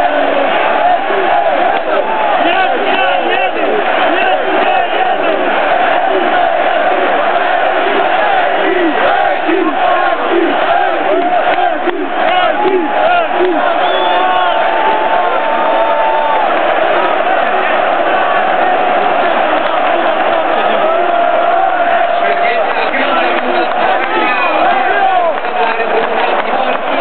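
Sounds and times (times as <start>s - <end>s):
stadium crowd shouting and chanting: 0.0s - 27.0s.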